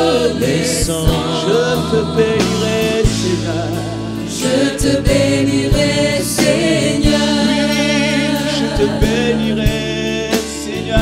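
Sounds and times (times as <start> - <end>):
acoustic guitar: 0.0 - 11.0
drum kit: 0.0 - 11.0
keyboard: 0.0 - 11.0
voices singing: 0.0 - 11.0.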